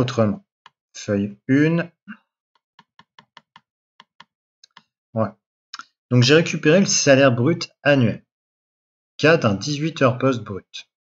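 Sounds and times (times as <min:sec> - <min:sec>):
computer mouse clicks: 0:02.8 - 0:04.9.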